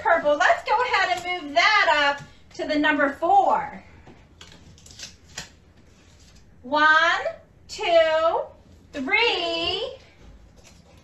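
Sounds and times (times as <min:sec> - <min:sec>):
paper rustle: 0:04.3 - 0:06.5.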